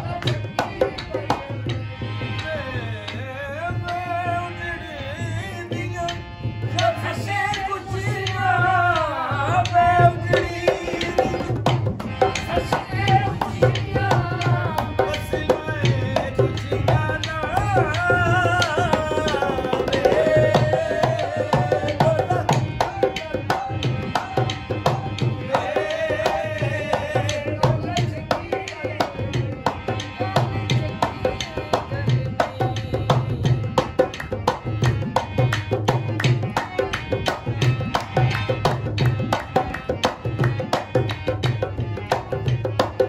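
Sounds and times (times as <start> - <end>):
man and woman singing: 0.0 - 34.2.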